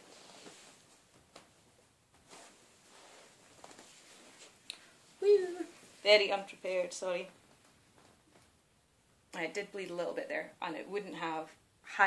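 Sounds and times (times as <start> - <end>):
faint rustling: 0.0 - 8.8.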